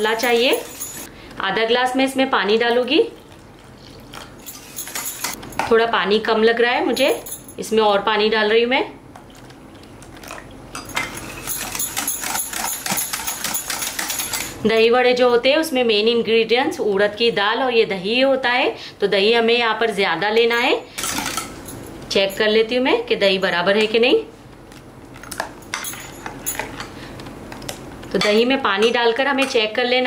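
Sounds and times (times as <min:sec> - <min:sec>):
metal clinking on glass: 0:04.4 - 0:05.7, 0:25.6 - 0:26.9.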